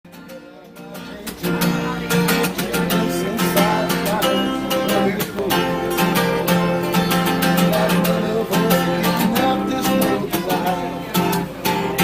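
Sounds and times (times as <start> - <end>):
acoustic guitar strumming: 0.1 - 12.0.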